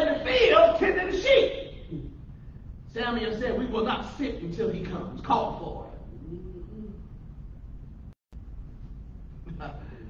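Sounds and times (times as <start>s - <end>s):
low room hum: 0.0s - 10.0s
soft murmur: 6.0s - 7.2s.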